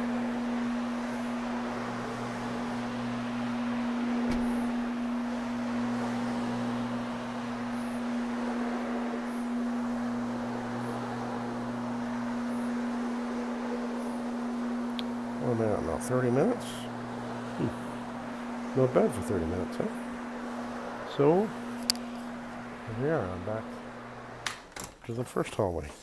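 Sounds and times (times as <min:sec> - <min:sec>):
lower machine note: 0:00.0 - 0:24.5
floor machine humming: 0:00.0 - 0:24.9.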